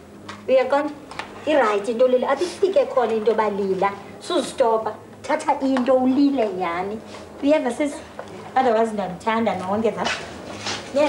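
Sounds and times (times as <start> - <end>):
woman speaking emotionally: 0.5 - 10.2.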